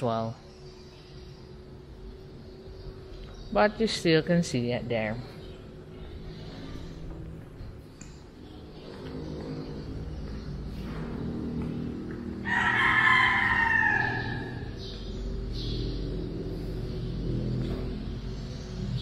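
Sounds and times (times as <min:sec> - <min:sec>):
low steady hum: 0:00.0 - 0:19.0
rooster crowing: 0:12.4 - 0:14.8.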